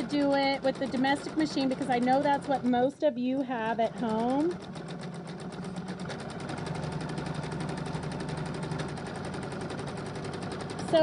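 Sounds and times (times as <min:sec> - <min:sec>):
sewing machine running: 0:00.0 - 0:11.0.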